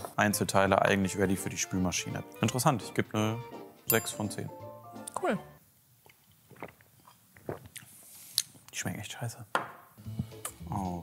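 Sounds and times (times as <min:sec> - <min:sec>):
person swallowing: 0:06.5 - 0:07.8.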